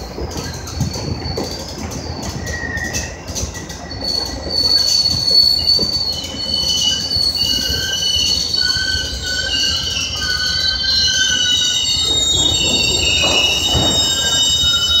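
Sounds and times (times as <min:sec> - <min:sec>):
low train rumble: 0:00.0 - 0:15.0
train wheels squealing on rails: 0:00.0 - 0:15.0.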